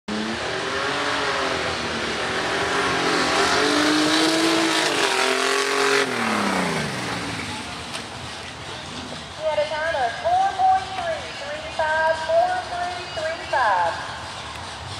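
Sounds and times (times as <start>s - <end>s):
truck engine revving: 0.1s - 10.2s.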